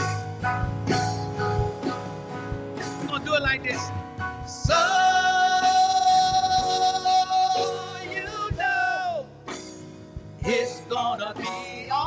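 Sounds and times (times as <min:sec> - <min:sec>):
man singing into a microphone: 0:04.5 - 0:09.3, 0:10.4 - 0:12.0.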